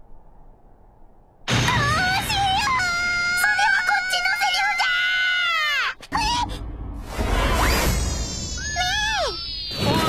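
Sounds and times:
low rumble: 0:06.2 - 0:09.7
girl's cartoon scream: 0:08.6 - 0:09.4.

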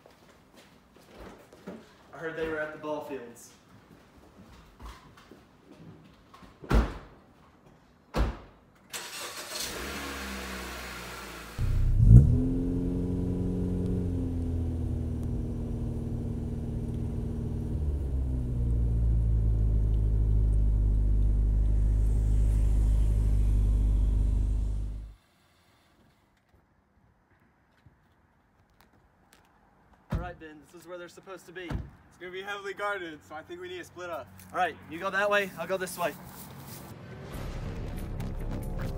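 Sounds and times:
car engine starting and running: 0:08.9 - 0:25.2, 0:36.9 - 0:38.9.

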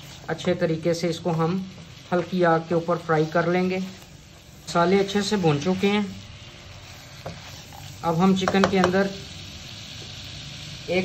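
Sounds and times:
chicken sizzling in a pan: 0:00.0 - 0:11.0.

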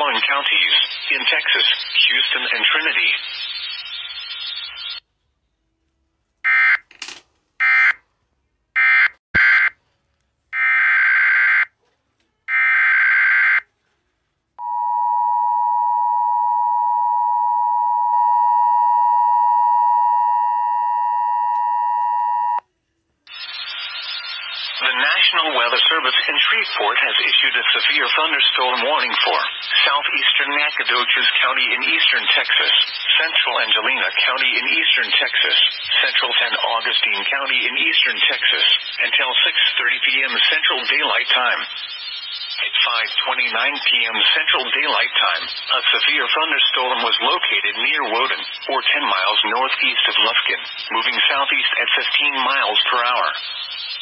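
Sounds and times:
person reading over radio: 0:00.0 - 0:05.0, 0:23.3 - 0:54.0.

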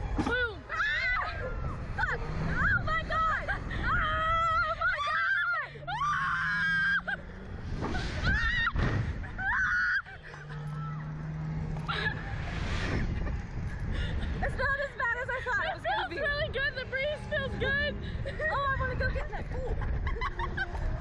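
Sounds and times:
riders screaming: 0:00.2 - 0:12.5
wind noise on microphone: 0:11.8 - 0:21.0.

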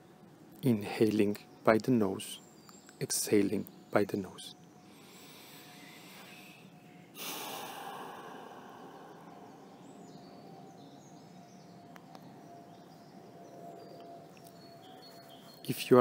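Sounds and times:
deep breath through the nose: 0:04.9 - 0:09.8.

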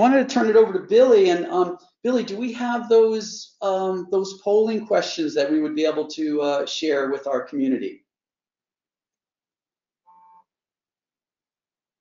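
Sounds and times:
faint multi-pitch tone: 0:10.1 - 0:10.4.

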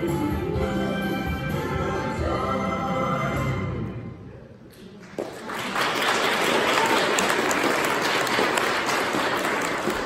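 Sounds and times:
audience applause: 0:05.0 - 0:10.0.

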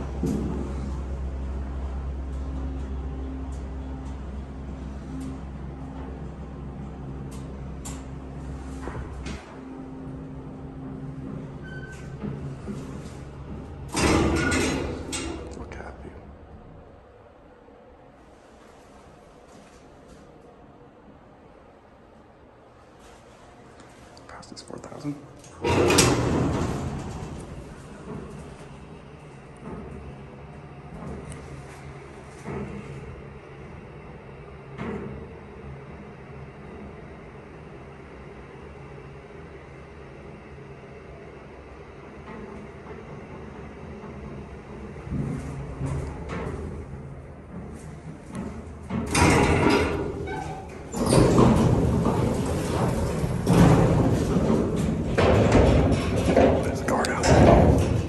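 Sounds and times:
elevator car humming: 0:00.0 - 0:58.0
metal gate and doors rattling: 0:11.6 - 0:15.9, 0:25.4 - 0:28.5, 0:45.1 - 0:58.0.

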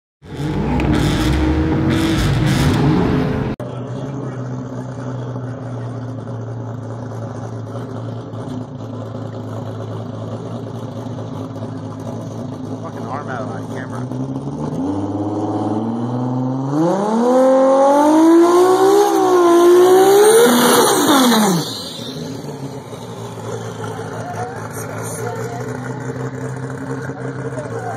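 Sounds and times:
car engine idling: 0:00.2 - 0:15.3, 0:18.6 - 0:27.9
sports car engines revving: 0:00.2 - 0:27.9.

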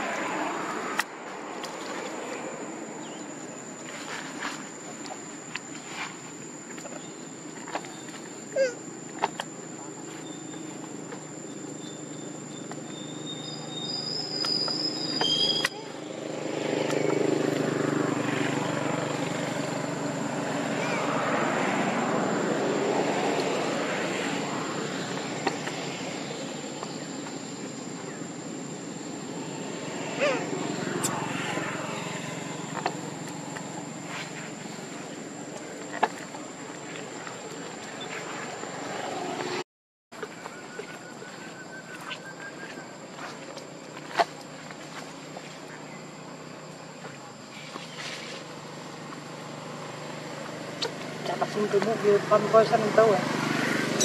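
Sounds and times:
short squeaks: 0:12.6 - 0:15.9.

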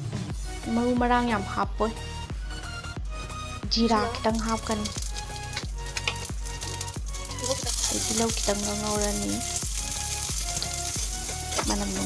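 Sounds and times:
background music with steady beat: 0:00.0 - 0:12.0
seeds sizzling in hot oil: 0:04.3 - 0:12.0.

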